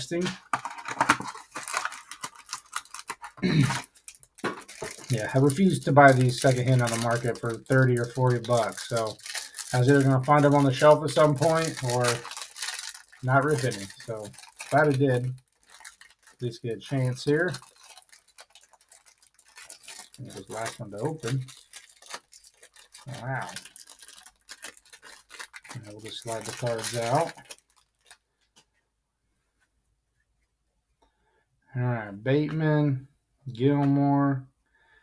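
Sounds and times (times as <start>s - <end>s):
card and plastic clicks and scrapes: 0.2s - 5.2s
cellophane wrapper being torn: 0.5s - 28.3s
man murmuring: 3.4s - 3.8s.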